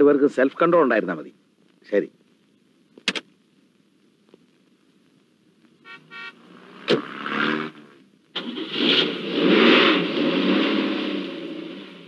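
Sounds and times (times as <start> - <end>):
car engine starting and revving: 6.4 - 12.0.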